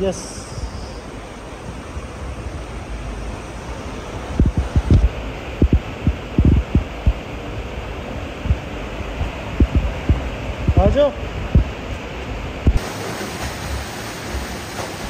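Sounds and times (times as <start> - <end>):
wind noise on microphone: 0.0 - 12.8
low buffeting thumps: 1.4 - 12.8.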